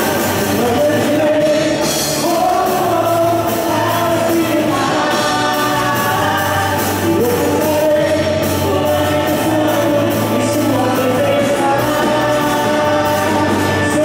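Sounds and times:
electric guitars: 0.0s - 14.0s
keyboard: 0.0s - 14.0s
steady drumbeat: 0.0s - 14.0s
voices singing together: 0.0s - 14.0s.

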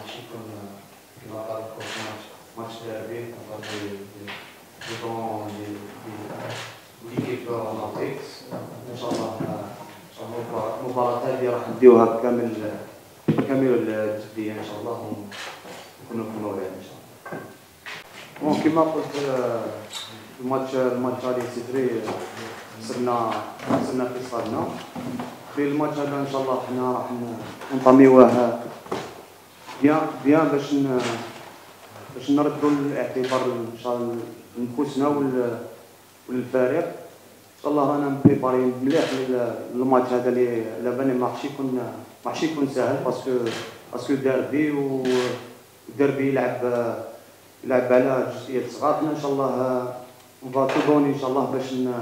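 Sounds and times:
man talking into a microphone: 0.0s - 15.4s, 16.0s - 17.0s, 18.4s - 28.8s, 29.8s - 31.4s, 32.0s - 35.7s, 36.3s - 37.0s, 37.6s - 52.0s.

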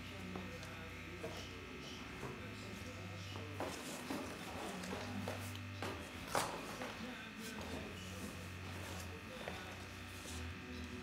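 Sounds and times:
faint voices murmuring: 0.0s - 11.0s
low electrical buzz: 0.0s - 11.0s.

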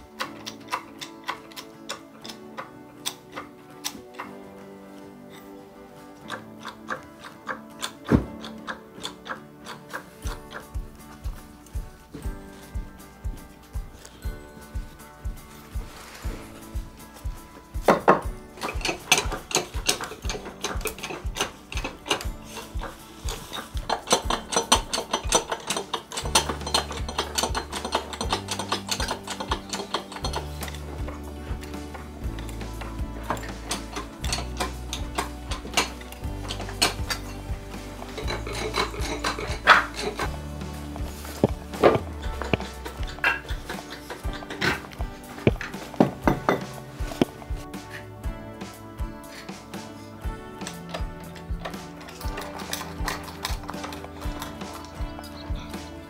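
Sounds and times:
music with percussive beat: 6.3s - 56.0s
low bass line: 26.2s - 47.7s.

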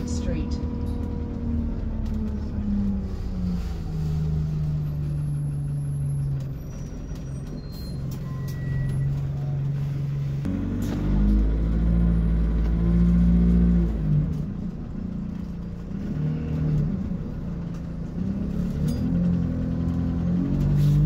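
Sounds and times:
bus engine revving: 0.0s - 21.0s.

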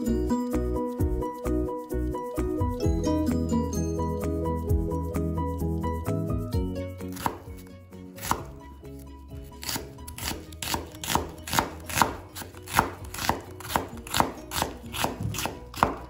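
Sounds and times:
knife chopping on wooden board: 7.1s - 8.6s, 9.6s - 16.0s.

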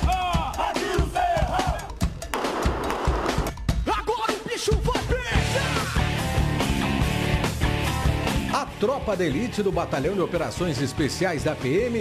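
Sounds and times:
group chanting and shouting: 0.0s - 2.1s.

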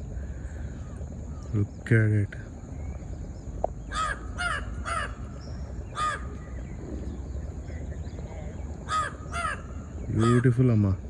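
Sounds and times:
crow cawing: 0.2s - 1.5s, 3.9s - 6.5s, 8.8s - 10.6s.

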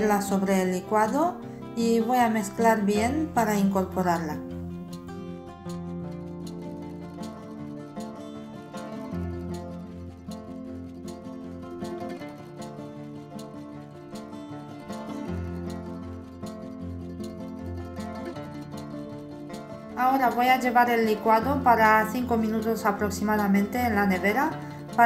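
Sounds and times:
light instrumental music: 0.0s - 25.0s.

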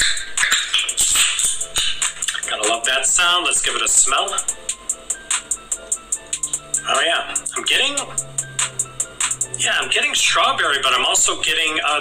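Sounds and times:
carbonation hissing: 0.0s - 11.2s.

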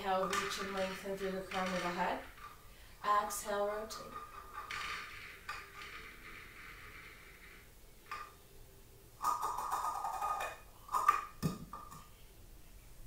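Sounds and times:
person breathing: 2.6s - 3.0s.

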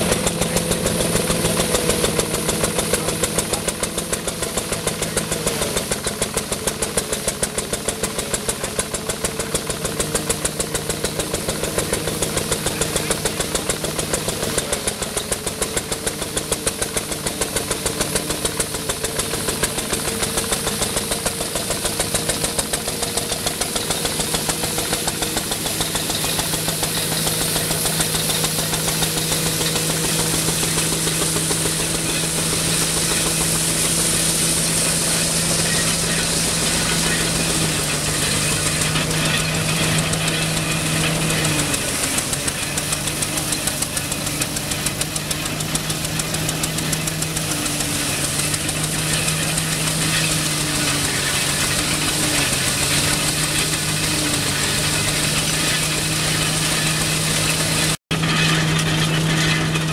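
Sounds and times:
diesel engine running: 0.0s - 59.9s
threshing machine hum: 0.0s - 59.9s.

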